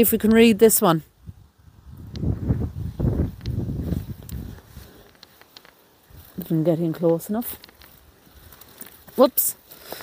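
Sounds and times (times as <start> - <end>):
footsteps on grass: 2.4 - 10.0.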